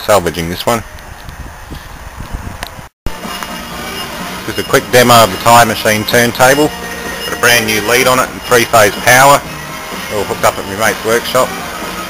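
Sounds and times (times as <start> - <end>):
low rumble of wind on microphone: 0.6 - 2.9.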